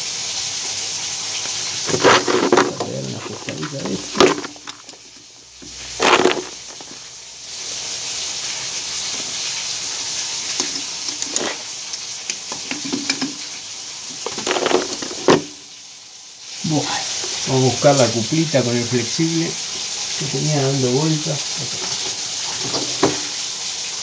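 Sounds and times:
water hissing through pipes: 0.0s - 24.0s
tools knocking: 21.8s - 23.3s.

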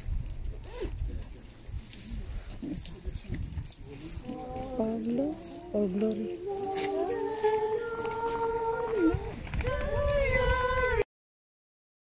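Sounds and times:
voices singing a held note: 4.2s - 11.0s.

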